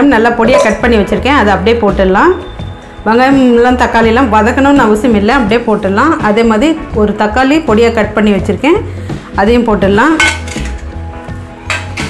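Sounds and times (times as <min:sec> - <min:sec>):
background music: 0:00.0 - 0:12.0
metal plate knocking on pot: 0:10.2 - 0:10.8, 0:11.7 - 0:12.0
tomatoes tipped into metal pot: 0:10.2 - 0:11.0, 0:11.6 - 0:12.0.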